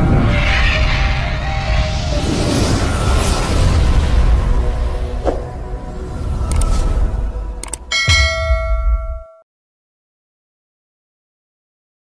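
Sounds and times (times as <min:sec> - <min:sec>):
bright bell-like ding: 0:07.9 - 0:09.4.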